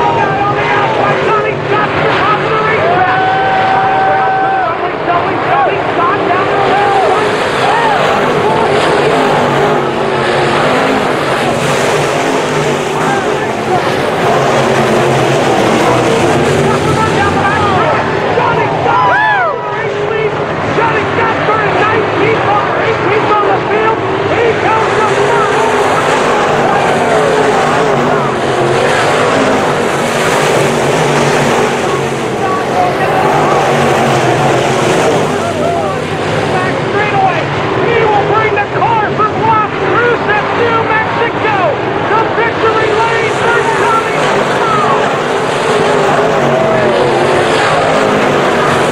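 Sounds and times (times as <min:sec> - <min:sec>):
race car engines roaring: 0:00.0 - 0:48.9.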